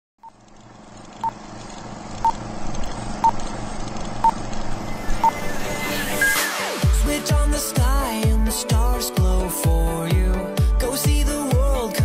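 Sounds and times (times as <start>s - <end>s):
low hum and noise: 0.2s - 8.2s.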